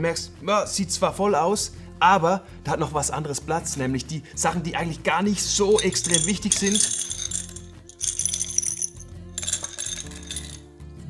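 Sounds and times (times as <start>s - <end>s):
background music low notes: 0.0s - 11.0s
pebbles clinking against glass: 5.5s - 10.7s.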